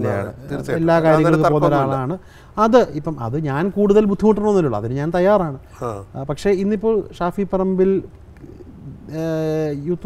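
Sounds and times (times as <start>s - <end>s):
man talking: 0.0s - 8.1s.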